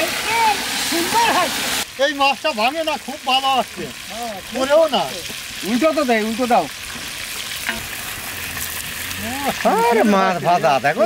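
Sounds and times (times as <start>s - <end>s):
fish sizzling in hot oil: 0.0s - 11.0s.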